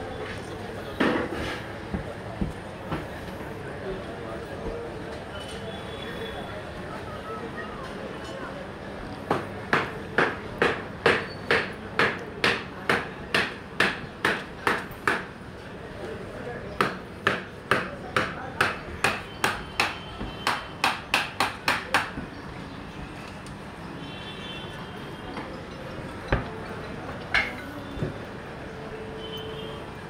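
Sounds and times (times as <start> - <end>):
sharp knocks like hammer blows: 9.3 - 15.3, 16.8 - 22.3.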